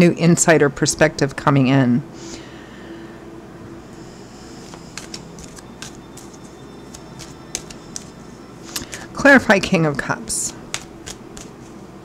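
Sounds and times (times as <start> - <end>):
low room hum: 0.0 - 12.0
cards being shuffled: 4.6 - 9.2, 10.3 - 11.8.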